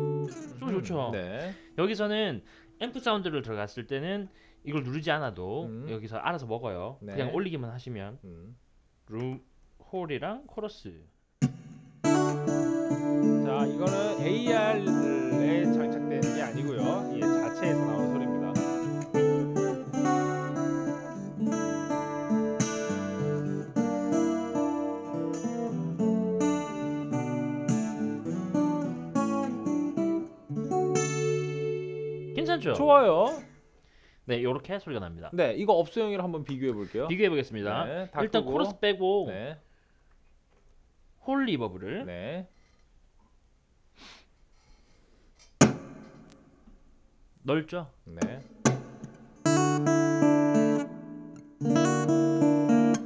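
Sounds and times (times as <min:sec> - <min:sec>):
fingerstyle acoustic guitar: 0:00.0 - 0:01.2, 0:11.4 - 0:33.6, 0:48.2 - 0:53.0.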